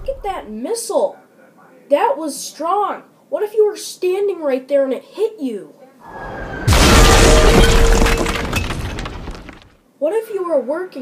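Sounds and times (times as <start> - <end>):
debris clattering: 6.1 - 9.8.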